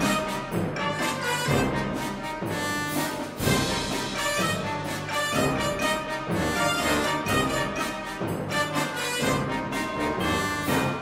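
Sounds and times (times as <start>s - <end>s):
orchestral music with brass: 0.0s - 11.0s.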